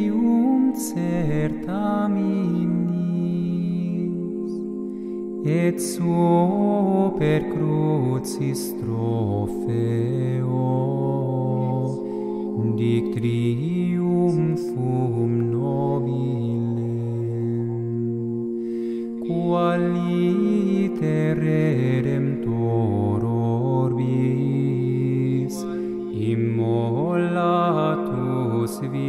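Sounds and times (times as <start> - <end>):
steady held drone: 0.0 - 29.0
vocal ensemble chanting a hymn: 0.0 - 29.0.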